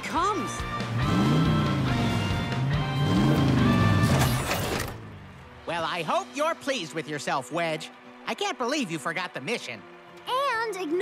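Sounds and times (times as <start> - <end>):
background music: 0.0 - 11.0
cartoon engine revving: 0.9 - 4.3.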